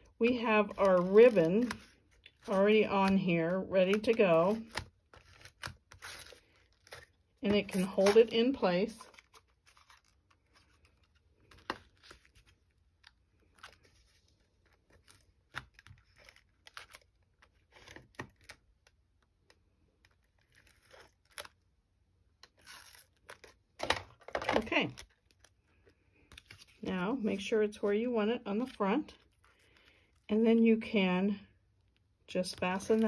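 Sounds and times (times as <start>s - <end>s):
paper card rustling: 0.0s - 21.6s, 22.4s - 30.3s, 32.5s - 33.0s.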